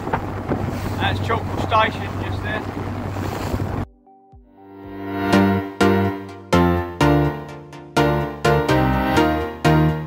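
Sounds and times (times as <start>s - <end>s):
outboard motor running: 0.0s - 3.8s
wind on microphone: 0.0s - 3.9s
water splashing against hull: 0.0s - 4.0s.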